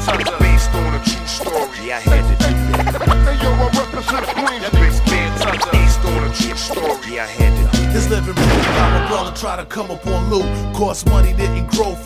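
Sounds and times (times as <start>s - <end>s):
vocal snippets: 0.0s - 9.6s
hip hop beat: 0.0s - 12.0s
scratch-like glides: 2.7s - 7.0s.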